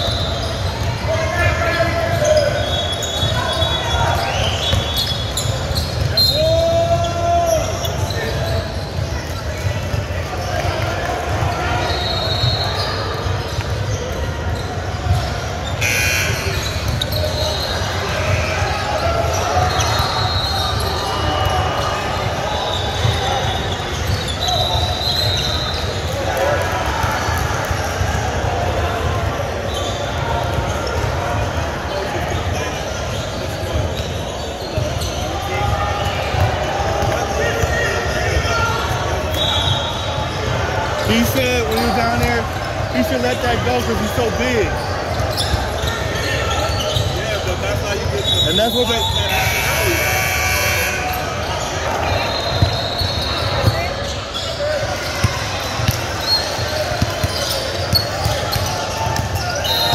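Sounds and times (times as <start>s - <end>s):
people talking in echoing hall: 0.0s - 59.9s
basketball bouncing on wooden court: 54.8s - 59.9s.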